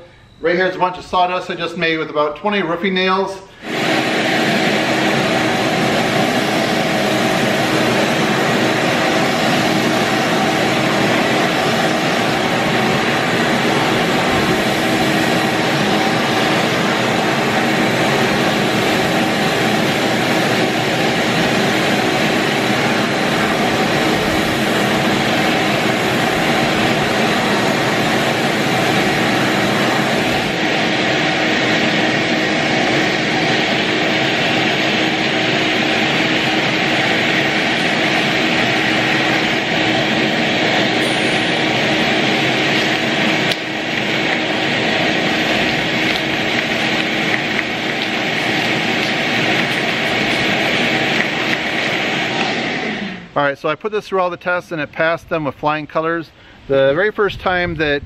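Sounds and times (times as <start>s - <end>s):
shop vacuum running: 0.0s - 55.0s
nozzle sucking up debris: 3.6s - 53.3s.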